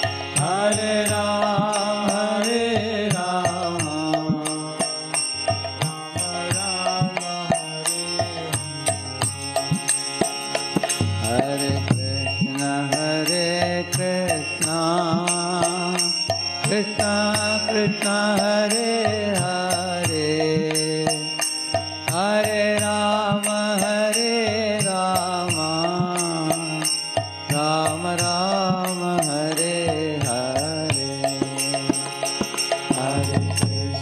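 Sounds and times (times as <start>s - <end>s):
man singing a chant: 0.0s - 9.8s, 11.2s - 34.0s
hand cymbals struck: 0.0s - 34.0s.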